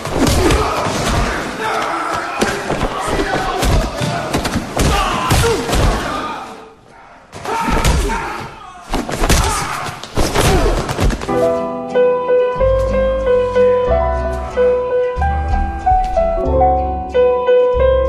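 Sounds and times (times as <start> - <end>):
raised voices: 0.0 - 10.9.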